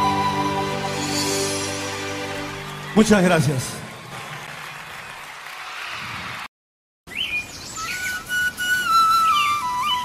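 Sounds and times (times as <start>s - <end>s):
flute playing sliding high notes: 0.0s - 2.9s
live recording hiss: 7.2s - 10.0s.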